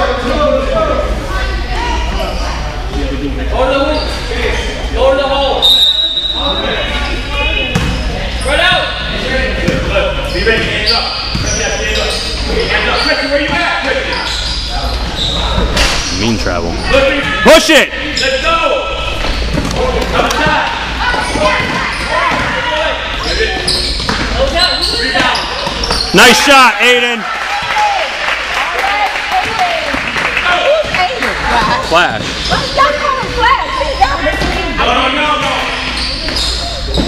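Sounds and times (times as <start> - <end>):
voices of players and spectators: 0.0 - 37.0.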